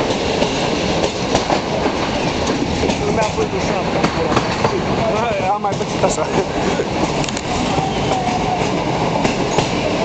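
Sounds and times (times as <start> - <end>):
train wheels rumbling on rails: 0.0 - 10.0
sharp clicks from track: 7.2 - 7.5.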